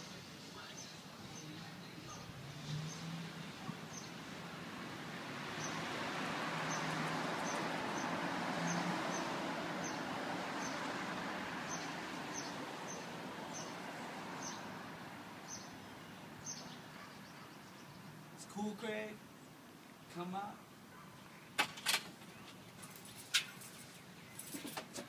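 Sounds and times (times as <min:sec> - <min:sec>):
outdoor background noise: 0:00.0 - 0:25.0.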